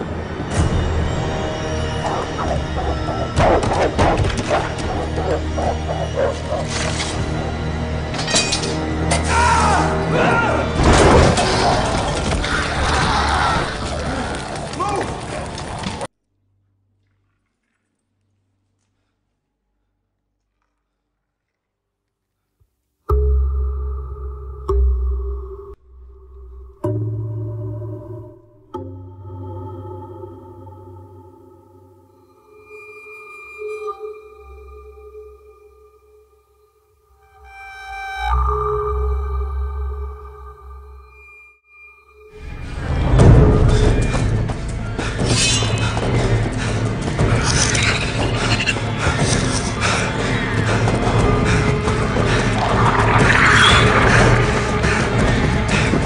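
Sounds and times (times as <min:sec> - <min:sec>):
dark soundtrack music: 0:00.0 - 0:16.1, 0:23.1 - 0:56.0.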